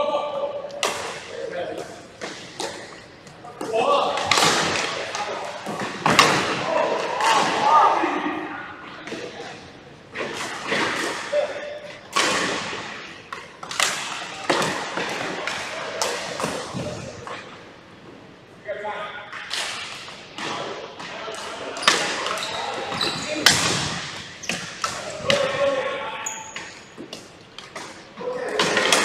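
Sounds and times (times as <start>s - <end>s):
players calling out: 20.6s - 27.0s.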